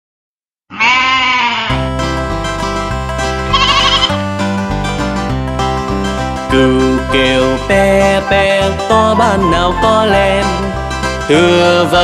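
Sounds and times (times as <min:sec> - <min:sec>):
cartoon sheep bleat: 0:00.7 - 0:01.8, 0:03.5 - 0:04.2
upbeat instrumental children's music: 0:01.8 - 0:12.0.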